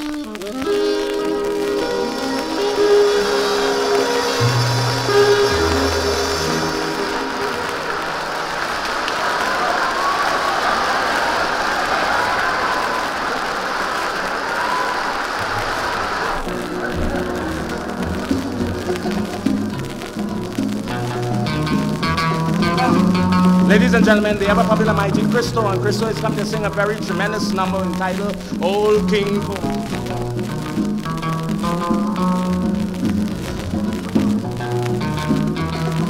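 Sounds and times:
audience applauding: 0:00.0 - 0:36.0
dance orchestra playing: 0:00.4 - 0:08.7, 0:16.4 - 0:36.0
low bass notes: 0:16.5 - 0:36.0.

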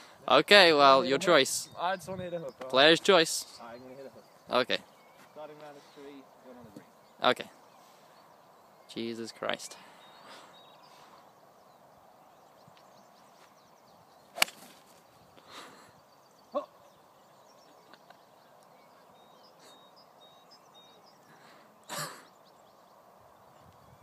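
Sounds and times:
golf iron striking ball: 0:14.4 - 0:14.8.

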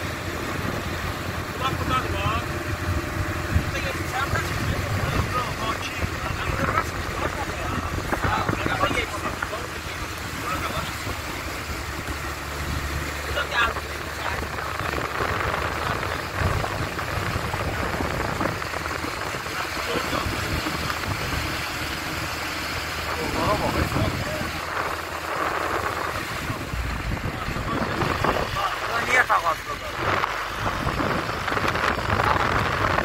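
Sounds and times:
car tyre and engine noise: 0:00.0 - 0:33.0
indistinct voices talking: 0:01.5 - 0:33.0
wind rushing: 0:14.0 - 0:33.0.

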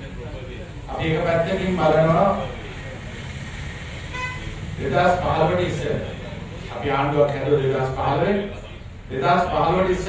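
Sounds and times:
vehicle horn toot: 0:04.1 - 0:04.6.

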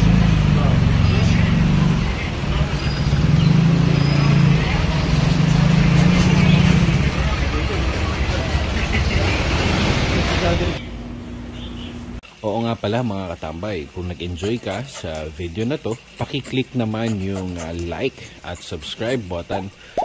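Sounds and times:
low background hum: 0:10.6 - 0:20.0
indistinct voices: 0:12.9 - 0:20.0.

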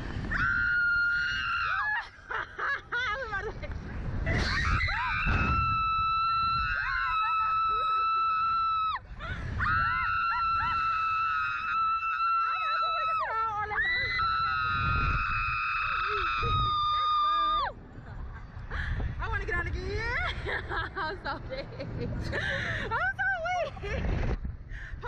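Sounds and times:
young women screaming: 0:00.3 - 0:02.6, 0:04.3 - 0:17.8.

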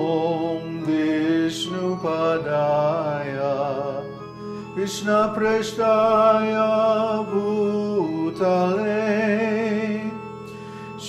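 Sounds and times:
electronic keyboard notes: 0:00.0 - 0:11.0.

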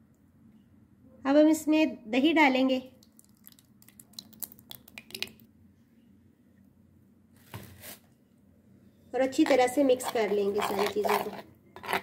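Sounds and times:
yogurt plopping into bowl: 0:02.9 - 0:05.4.

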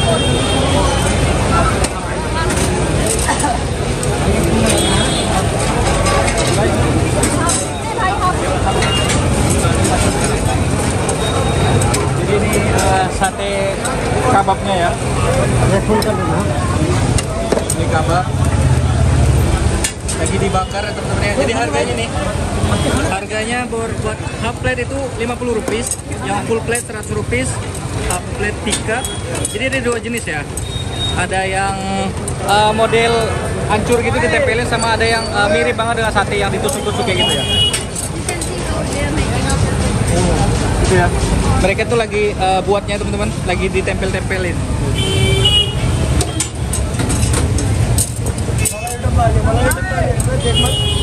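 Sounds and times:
people talking: 0:00.0 - 0:44.7, 0:46.2 - 0:50.9
crowded street rumble: 0:00.0 - 0:51.0
car horn toot: 0:36.8 - 0:37.9, 0:44.9 - 0:46.4, 0:50.4 - 0:51.0
clinks: 0:46.1 - 0:50.8.

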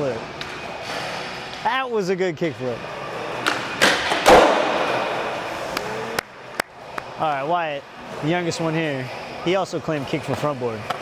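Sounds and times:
skateboard landing thud: 0:03.4 - 0:05.4.

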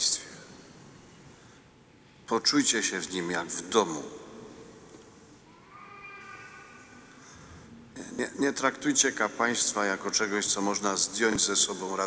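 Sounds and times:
echo of spoken words: 0:00.0 - 0:01.5, 0:02.1 - 0:12.0
faint high cry-like tone: 0:05.5 - 0:07.0.

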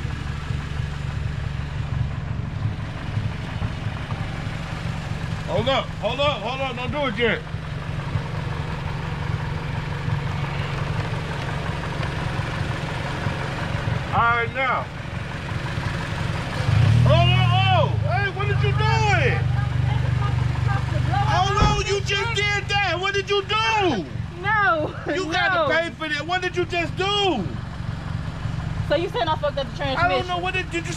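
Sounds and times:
car engine idling: 0:00.0 - 0:30.9.

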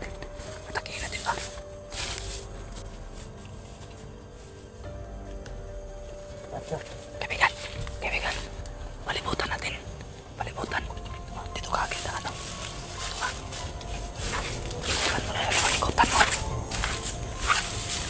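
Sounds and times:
low whispered voices: 0:00.0 - 0:18.0
music of long held tones: 0:00.0 - 0:18.0.

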